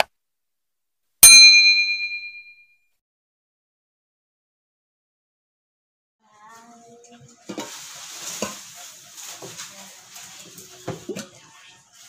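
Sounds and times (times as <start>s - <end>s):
notification bell ding: 1.2s - 2.6s.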